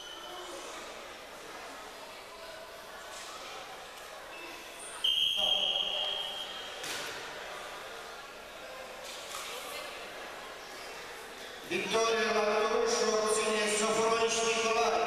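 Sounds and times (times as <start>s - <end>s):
murmur of voices: 0.0s - 15.0s
referee's whistle blast: 5.0s - 6.8s.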